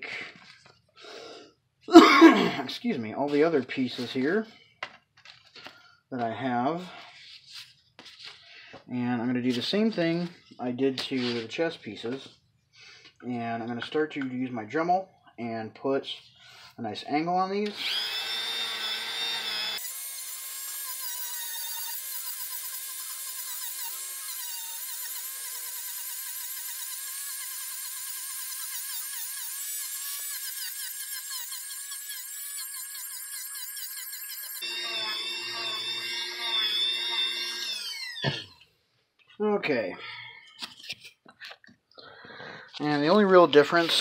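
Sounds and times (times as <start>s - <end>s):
rotary tool grinding foam: 17.7s - 38.6s, 42.8s - 44.0s.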